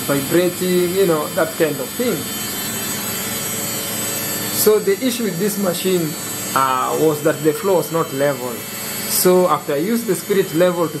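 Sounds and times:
washing machine spinning: 0.0 - 11.0.

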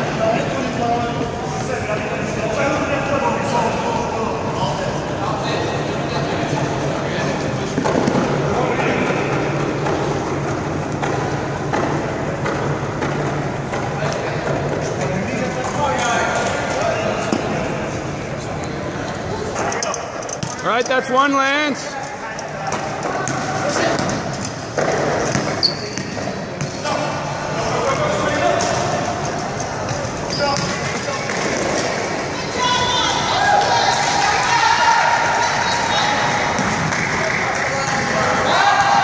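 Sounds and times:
many voices calling and talking: 0.0 - 39.0
basketball bouncing on gym floor: 24.8 - 26.8.

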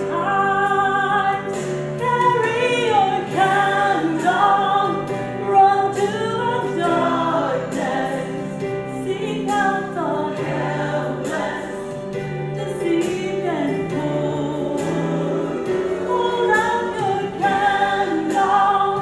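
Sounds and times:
musical accompaniment: 0.0 - 19.0
woman singing into a microphone: 0.0 - 19.0.

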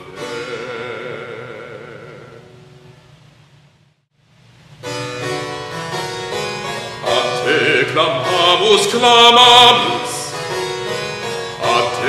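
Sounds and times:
harpsichord chords: 0.0 - 2.8, 4.8 - 12.0
man singing with vibrato: 0.0 - 2.8, 6.9 - 12.0.

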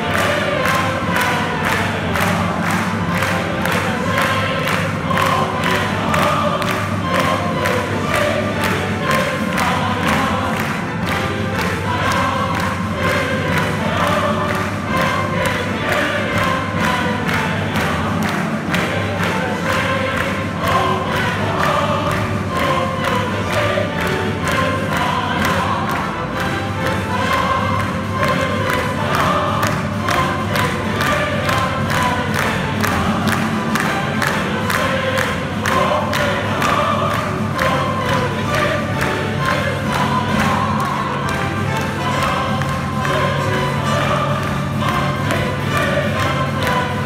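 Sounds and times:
audience clapping along: 0.0 - 47.0
choir singing: 0.0 - 47.0
operatic singers with orchestra: 0.0 - 47.0.

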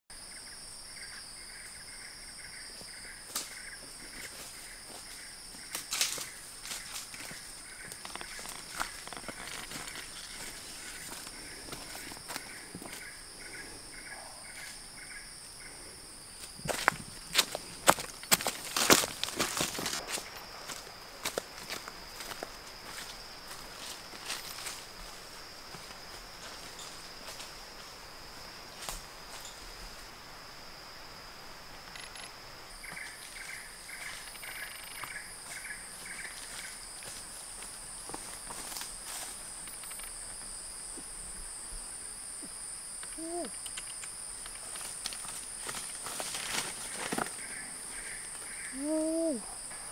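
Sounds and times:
insect chirping: 0.1 - 49.9
insects buzzing: 0.1 - 49.9
footsteps crunching through dry leaves: 4.2 - 13.1, 16.6 - 27.5, 44.7 - 47.5.

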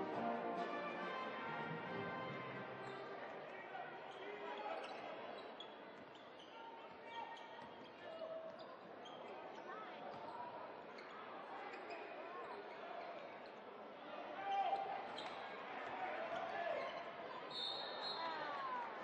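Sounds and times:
crowd murmur and voices: 0.0 - 19.0
sneaker squeaks: 4.6 - 9.5, 14.7 - 15.5, 16.7 - 18.3.

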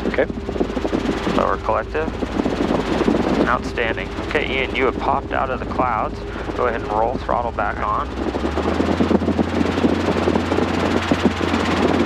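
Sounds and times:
helicopter engine: 0.0 - 12.0
rotor chop: 0.0 - 12.0.

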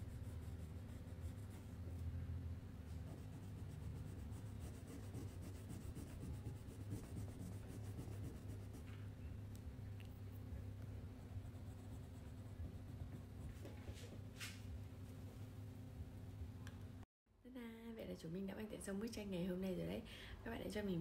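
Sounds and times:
steady low hum: 0.0 - 17.9
pencil scratching on paper: 2.8 - 8.9.

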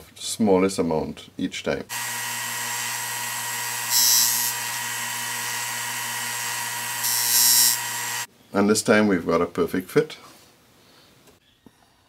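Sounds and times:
sander motor hum: 1.9 - 8.3.

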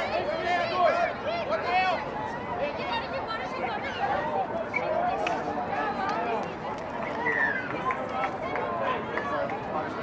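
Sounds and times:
players shouting and calling: 0.0 - 10.0.

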